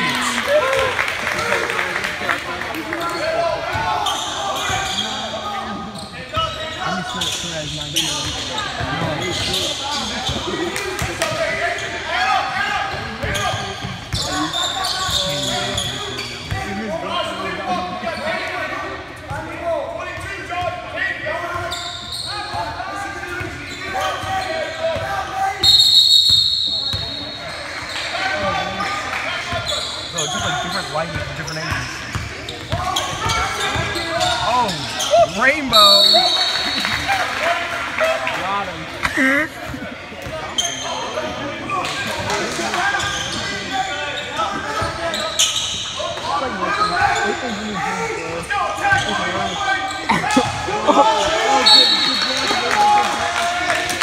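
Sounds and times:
voices of players and crowd: 0:00.0 - 0:54.0
referee's whistle blasts: 0:25.6 - 0:27.4, 0:35.6 - 0:36.8, 0:51.4 - 0:52.6.

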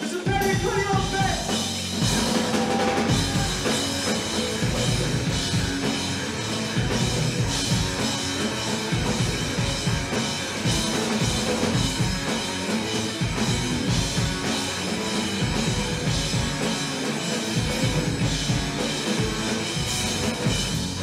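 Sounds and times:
drum kit: 0:00.0 - 0:21.0
electric guitars: 0:00.0 - 0:21.0
bass guitar: 0:00.3 - 0:21.0.

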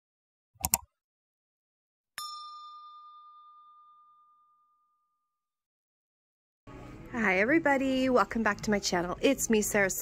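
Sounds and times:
bell-like ding chime: 0:02.2 - 0:05.5.

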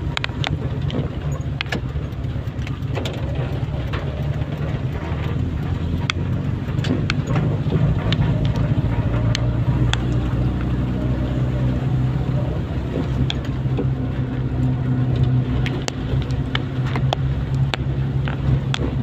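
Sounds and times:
car engine hum and road noise: 0:00.0 - 0:19.0
rain ticking on windshield: 0:00.0 - 0:19.0.

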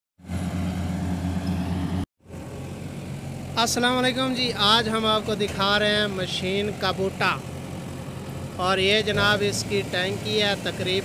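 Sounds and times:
combine harvester engine drone: 0:00.2 - 0:11.0.

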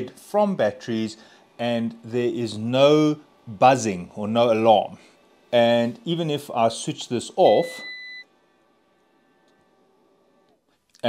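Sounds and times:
steady electronic beep: 0:07.5 - 0:08.3.

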